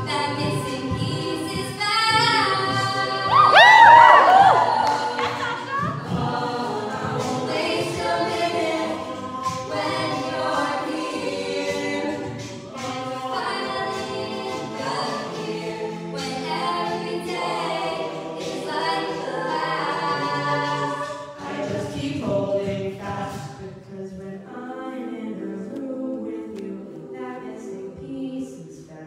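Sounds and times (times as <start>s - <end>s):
a cappella group singing: 0.0s - 29.0s.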